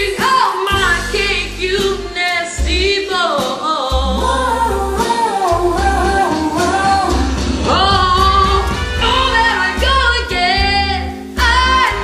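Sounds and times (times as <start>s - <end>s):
woman singing with reverb: 0.0s - 12.0s
backing track with bass notes: 3.9s - 12.0s.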